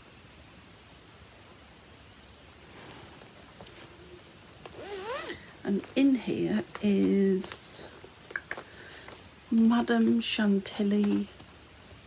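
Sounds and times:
soft fabric rustling: 0:02.6 - 0:11.7
bag being unzipped: 0:04.6 - 0:05.4.

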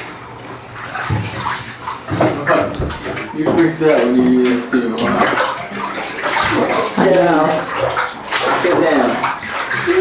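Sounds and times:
water splashing in bathtub: 0:00.0 - 0:10.0.

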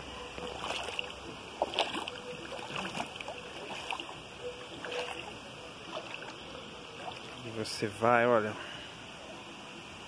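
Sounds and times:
feet wading and water splashing: 0:00.0 - 0:07.8.

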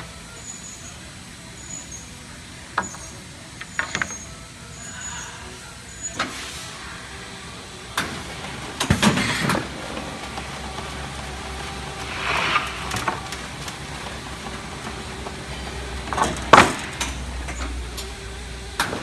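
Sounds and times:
machine humming: 0:00.0 - 0:19.0
rushing sliding noise: 0:02.8 - 0:19.0.

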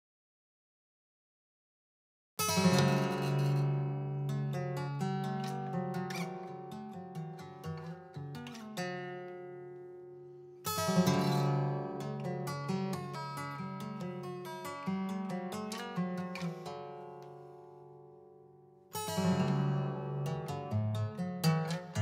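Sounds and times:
fingerstyle acoustic guitar: 0:02.4 - 0:22.0.

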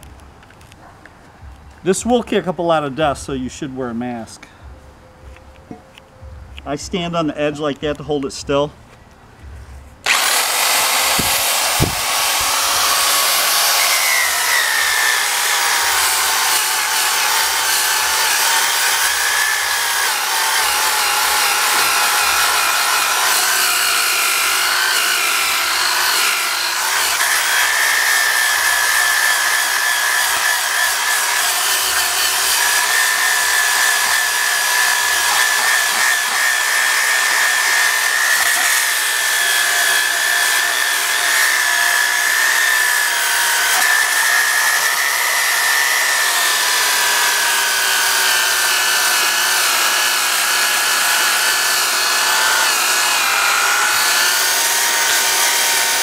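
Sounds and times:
disc grinding on cast iron: 0:10.0 - 0:56.0
drill whining: 0:10.0 - 0:56.0.

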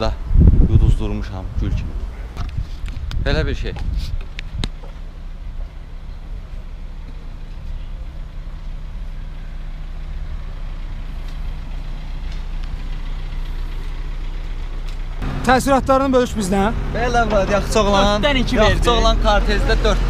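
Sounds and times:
car engine idling: 0:04.1 - 0:20.0.

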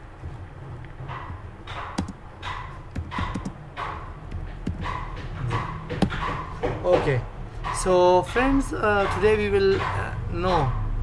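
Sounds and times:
indistinct voices: 0:04.8 - 0:11.0.

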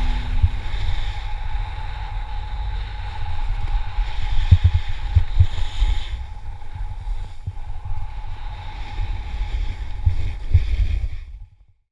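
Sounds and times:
wind rumbling on microphone: 0:00.0 - 0:11.8.

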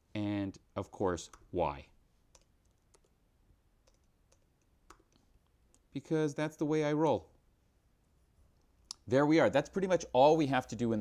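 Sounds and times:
keyboard and mouse clicks: 0:02.3 - 0:03.2, 0:03.8 - 0:05.9.

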